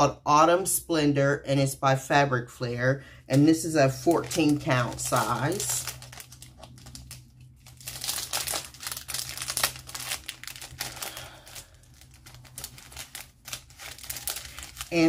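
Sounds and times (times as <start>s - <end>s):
packaging crinkling: 3.3s - 15.0s.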